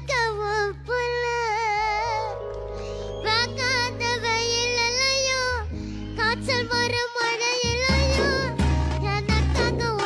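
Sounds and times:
boy singing: 0.0 - 2.4, 3.2 - 10.0
backing music: 7.6 - 10.0.

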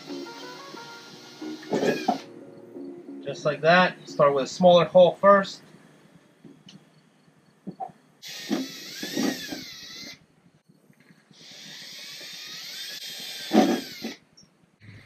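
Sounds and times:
cordless drill whining through steel: 0.0 - 2.3, 8.2 - 10.2, 11.3 - 14.3.

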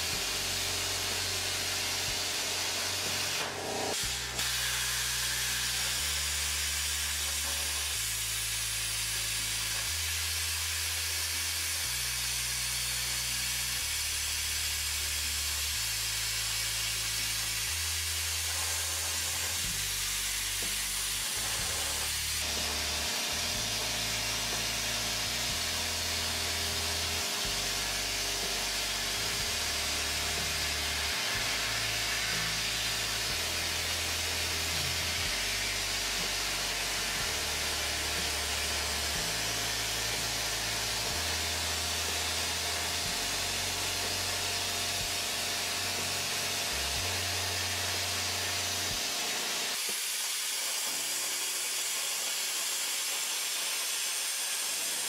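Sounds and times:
plasma torch hissing: 0.0 - 55.0.

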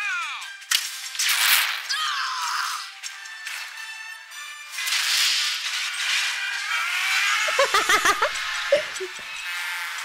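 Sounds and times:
rushing vehicle noise: 3.5 - 10.0.

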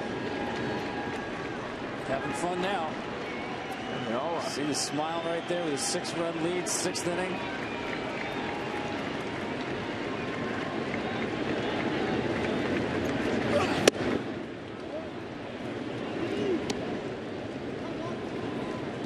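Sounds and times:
stadium crowd murmuring: 0.0 - 19.0.

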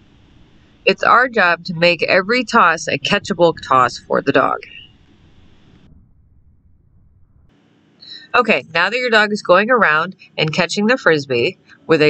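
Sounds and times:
low rumble: 0.0 - 7.6.

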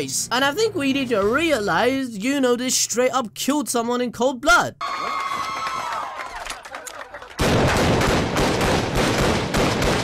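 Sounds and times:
rapid gunfire: 7.4 - 10.0.

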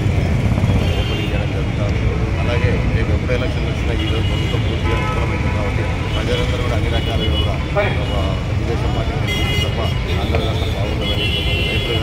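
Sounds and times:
man speaking into microphones: 0.0 - 12.0.

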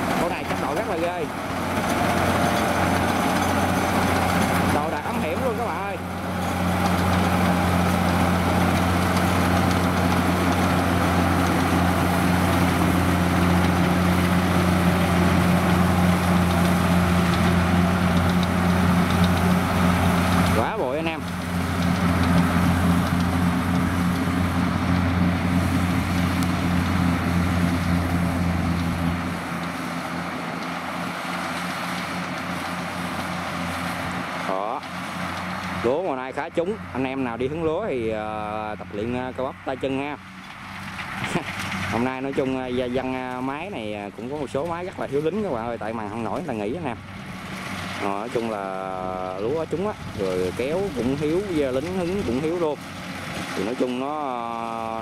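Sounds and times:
combine harvester engine droning: 0.0 - 55.0.

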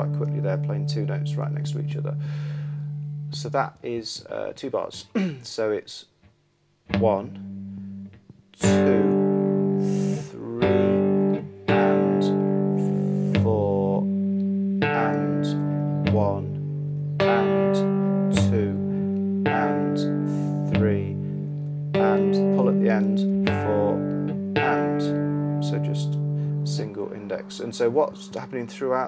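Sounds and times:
cigar box guitar fingerstyle blues: 6.9 - 28.7.

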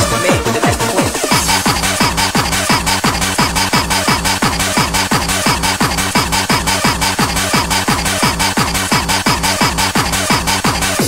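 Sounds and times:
fast electronic dance music: 0.0 - 11.0
pounding kick drum: 0.0 - 11.0.

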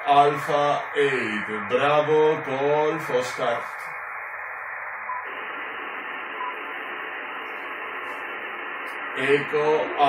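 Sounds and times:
radio receiver hiss: 0.0 - 10.0.

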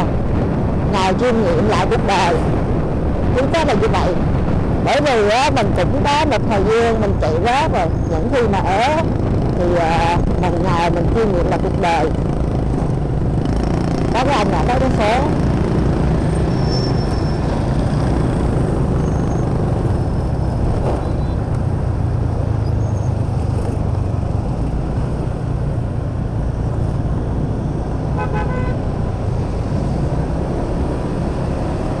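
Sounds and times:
motorcycle engine drone: 0.0 - 32.0
road and wind noise: 0.0 - 32.0
vehicle horn honking: 28.2 - 28.8.

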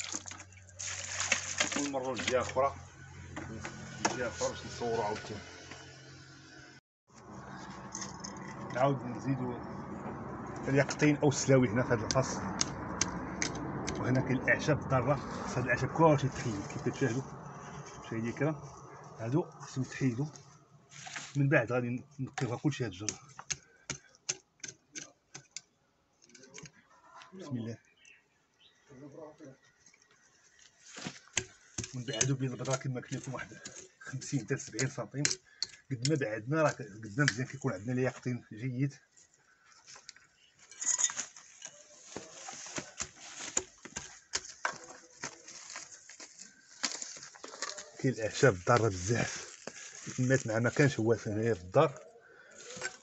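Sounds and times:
hand scraping dry stony soil: 13.4 - 21.6, 39.1 - 53.0
hoe chopping into soil: 42.7 - 45.4.

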